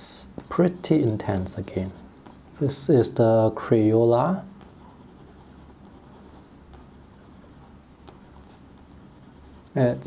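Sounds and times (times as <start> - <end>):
crayon scratching on paper: 0.4 - 2.4, 4.6 - 10.0.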